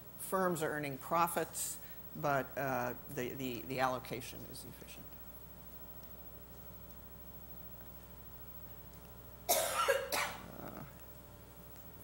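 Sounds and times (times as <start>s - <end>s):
low room hum: 0.0s - 12.0s
person coughing: 9.5s - 11.0s.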